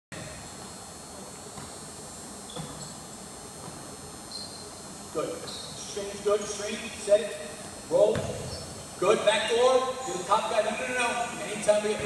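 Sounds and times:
gymnasium background noise: 0.1s - 12.0s
shoe squeaks on court: 2.5s - 3.1s, 4.3s - 4.7s.

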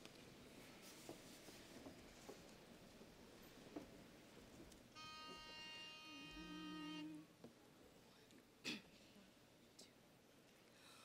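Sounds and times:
faint steady buzzing tone: 4.9s - 7.4s.

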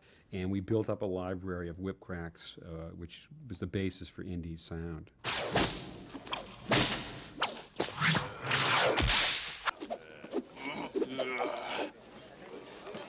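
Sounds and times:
bullwhip cracking: 5.2s - 11.5s
whip lash swishing: 5.2s - 11.5s.

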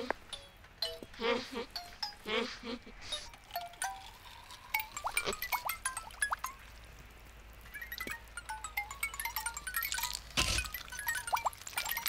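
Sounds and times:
synthesized tinkling pings: 3.4s - 6.6s, 7.7s - 12.0s.

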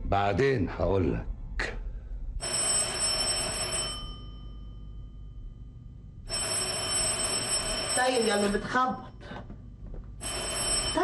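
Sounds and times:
electric doorbell ringing: 2.4s - 5.2s, 10.2s - 11.0s.

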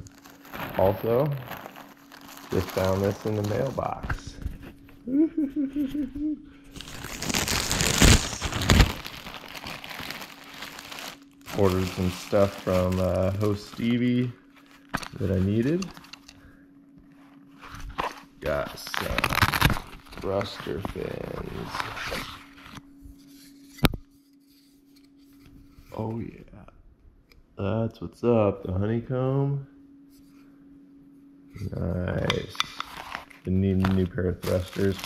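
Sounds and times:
plastic bag ripping: 0.0s - 4.2s, 6.7s - 16.1s, 17.9s - 22.6s, 32.8s - 35.0s
plastic crinkling: 0.0s - 4.4s, 6.7s - 16.3s, 17.8s - 22.8s, 32.8s - 35.0s
plastic packaging rustling: 0.0s - 4.8s, 6.7s - 16.3s, 17.5s - 22.8s, 32.8s - 35.0s
faint low hum: 0.0s - 35.0s.

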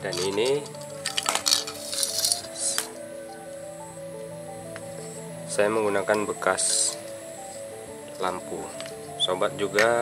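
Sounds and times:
plastic plugs clicking and rustling: 0.0s - 3.4s, 8.0s - 9.0s, 9.6s - 10.0s
background music: 0.0s - 10.0s.

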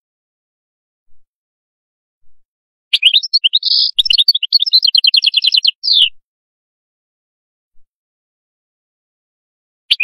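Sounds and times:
goldfinch singing: 2.9s - 6.2s.

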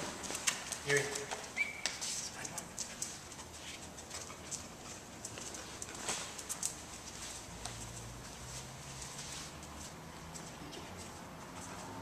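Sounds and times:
dog claws on concrete floor: 0.0s - 12.0s.

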